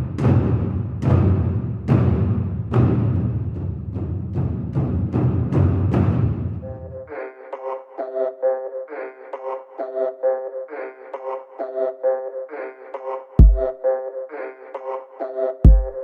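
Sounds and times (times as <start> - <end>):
heavy percussion hits: 0.0 - 6.7, 13.4 - 13.7
pulsing pitched pattern: 13.4 - 13.9.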